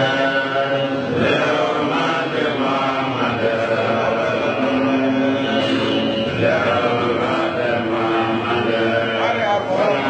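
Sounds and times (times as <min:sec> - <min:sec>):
men chanting religious recitation: 0:00.0 - 0:10.0.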